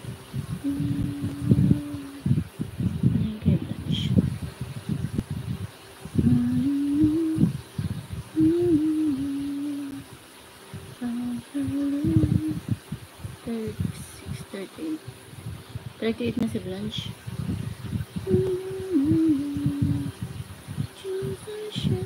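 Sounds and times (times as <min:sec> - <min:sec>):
person humming: 0:00.5 - 0:02.4, 0:06.2 - 0:07.6, 0:08.2 - 0:10.1, 0:11.0 - 0:12.8, 0:18.2 - 0:20.1, 0:21.0 - 0:22.0.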